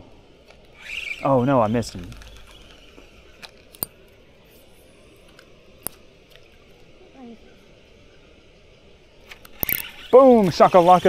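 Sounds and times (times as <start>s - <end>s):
faint steady background: 0.0s - 11.0s
sharp light clicks: 1.9s - 4.0s, 5.3s - 6.5s, 9.2s - 10.1s.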